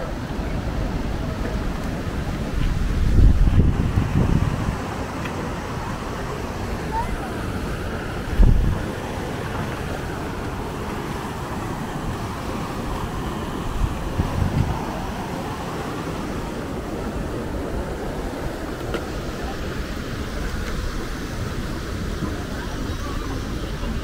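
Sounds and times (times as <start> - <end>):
faint voices: 0.0 - 24.0
falling water: 0.0 - 24.0
wind: 0.0 - 24.0
wind buffeting microphone: 0.0 - 24.0.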